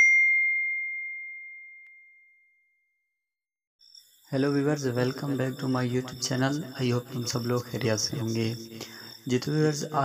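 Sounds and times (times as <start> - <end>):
bell-like ding: 0.0 - 2.8.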